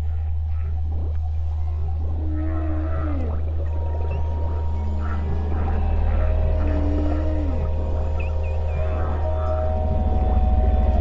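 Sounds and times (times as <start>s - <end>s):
low drone: 0.0s - 11.0s
whale call: 1.5s - 11.0s.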